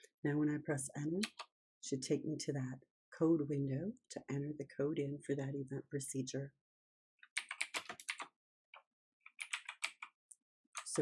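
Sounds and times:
typing on computer keyboard: 0:01.2 - 0:01.5, 0:07.3 - 0:08.3, 0:09.3 - 0:10.1.

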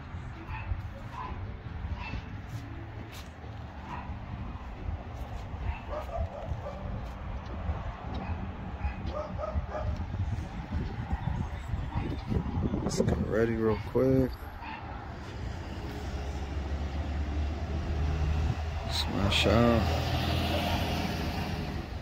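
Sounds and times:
dog barking and yipping: 0:00.5 - 0:02.3, 0:03.8 - 0:04.7, 0:05.3 - 0:07.1, 0:08.1 - 0:10.0, 0:11.8 - 0:12.4, 0:13.7 - 0:15.1.

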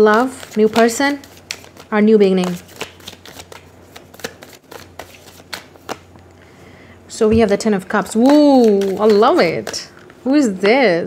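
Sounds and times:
cards being shuffled: 0:00.0 - 0:06.1, 0:08.0 - 0:10.8.

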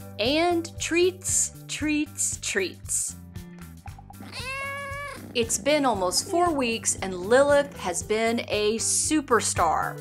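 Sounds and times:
soft background music: 0:00.0 - 0:10.0
kitten meowing: 0:04.1 - 0:05.4.

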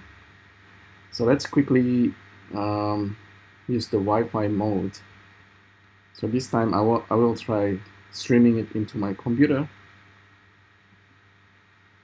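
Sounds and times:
low hum: 0:00.0 - 0:12.0
soft steady hiss: 0:00.0 - 0:12.0.

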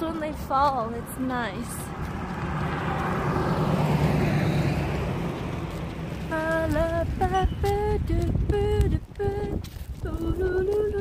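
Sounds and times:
car passing: 0:00.0 - 0:08.7.

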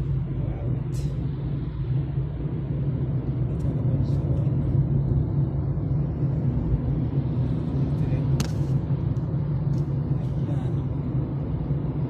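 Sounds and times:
car driving rumble from inside: 0:00.0 - 0:12.0.

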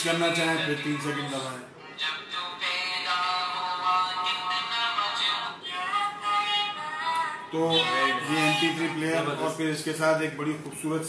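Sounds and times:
devotional song from small speaker: 0:00.0 - 0:09.8.

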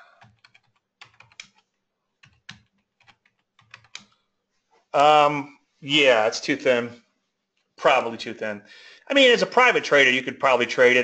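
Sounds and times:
faint computer keyboard typing: 0:00.0 - 0:04.3.

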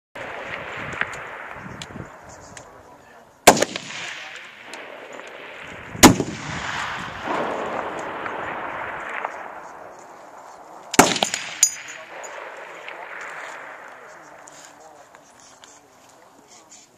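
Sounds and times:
rifle shots with rolling echo: 0:00.2 - 0:16.4.

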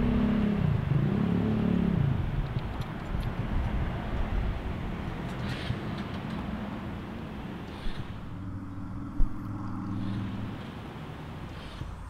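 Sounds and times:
steady engine hum: 0:00.0 - 0:12.0
vehicle engine rumble: 0:00.0 - 0:12.0.

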